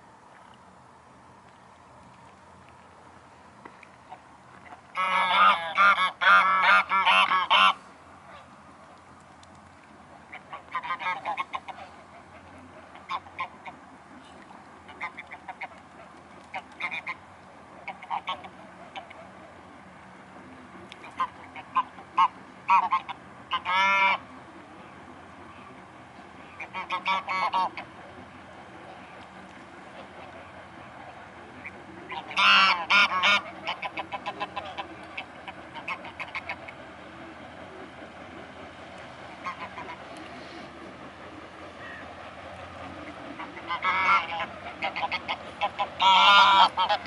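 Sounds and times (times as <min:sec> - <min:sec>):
swans honking: 0:02.2 - 0:47.0.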